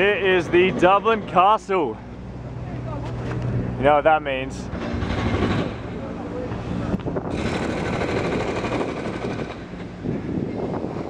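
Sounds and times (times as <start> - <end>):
city traffic: 0.0 - 11.0
wind noise on microphone: 4.7 - 6.0, 6.6 - 11.0.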